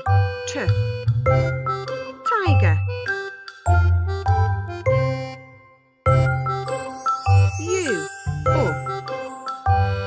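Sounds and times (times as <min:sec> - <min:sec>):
bright children's music: 0:00.0 - 0:10.0.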